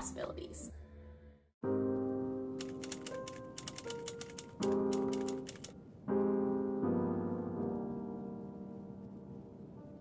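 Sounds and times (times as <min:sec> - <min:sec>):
lofi keyboard chords music: 0:01.6 - 0:10.0
typewriter key clicks: 0:02.6 - 0:05.7.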